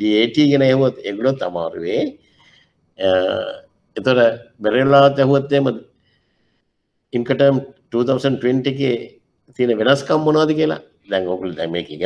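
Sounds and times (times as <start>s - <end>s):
man speaking: 0.0s - 2.2s, 3.0s - 5.9s, 7.2s - 12.0s.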